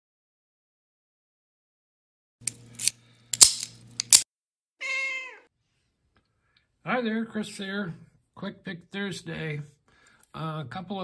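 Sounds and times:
cat meow: 4.8s - 5.5s.

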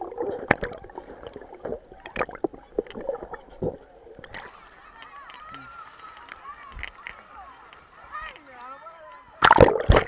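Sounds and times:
muffled underwater knocks and gurgles: 0.0s - 4.5s.

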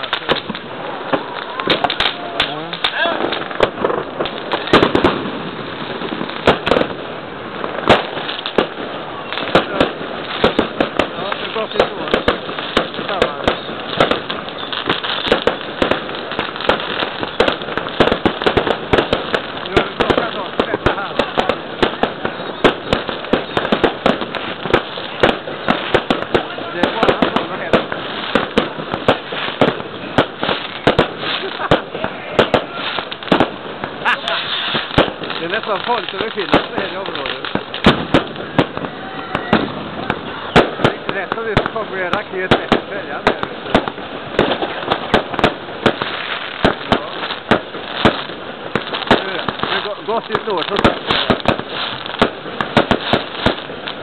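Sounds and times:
fireworks and firecrackers banging: 0.0s - 54.0s.

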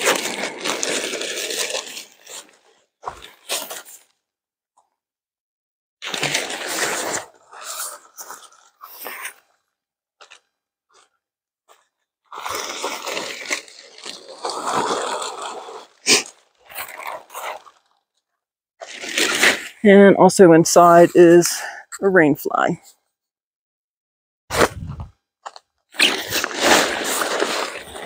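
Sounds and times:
tent fabric rustling and crinkling: 0.0s - 4.2s, 6.0s - 18.2s, 18.8s - 19.8s, 24.5s - 28.0s.

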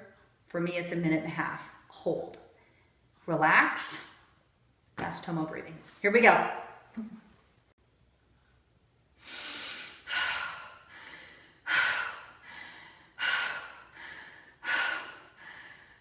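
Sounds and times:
woman forceful rhythmic breathing: 8.3s - 16.0s.

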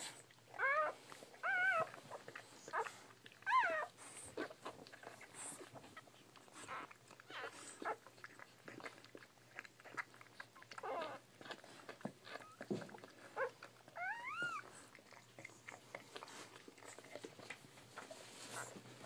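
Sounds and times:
puppies suckling: 0.0s - 19.0s
puppy whimpering: 0.1s - 19.0s
puppy squeak: 13.4s - 14.7s.

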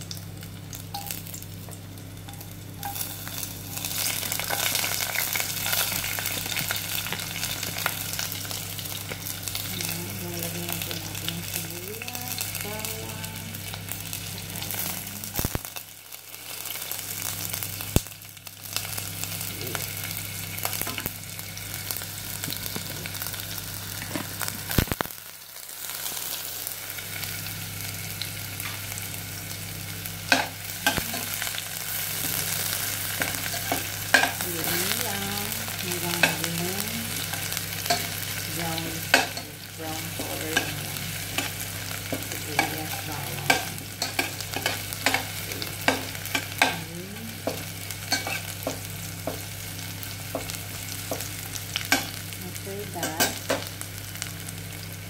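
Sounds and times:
low hum: 0.0s - 15.8s
food sizzling in oil: 0.0s - 55.0s.

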